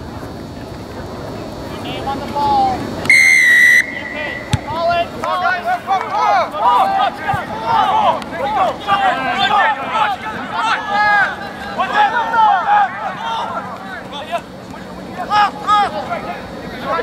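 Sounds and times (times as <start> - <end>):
crowd shouting: 2.4 - 17.0
boot kicking ball: 4.5 - 4.8.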